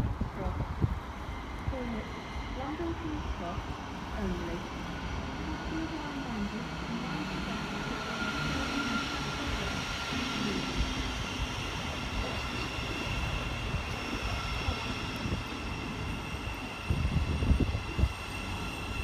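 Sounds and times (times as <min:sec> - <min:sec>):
train rumbling: 0:00.0 - 0:19.0.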